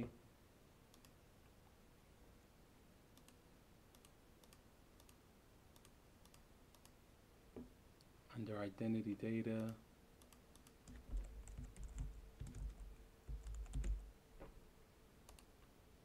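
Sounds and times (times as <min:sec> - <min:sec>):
faint computer mouse clicks: 0:00.9 - 0:01.2, 0:03.2 - 0:07.0, 0:09.6 - 0:11.0, 0:15.3 - 0:15.5.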